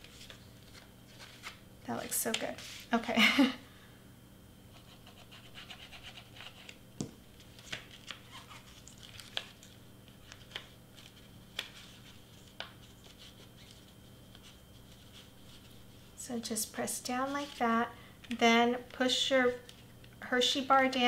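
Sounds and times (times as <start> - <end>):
faint steady hum: 0.0 - 21.0
paper wrapper rustling: 7.4 - 16.2.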